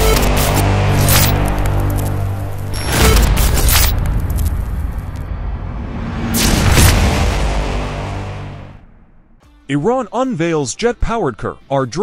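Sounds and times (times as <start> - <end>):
low bass drone: 0.0 - 9.4
whooshing hits: 2.7 - 9.4.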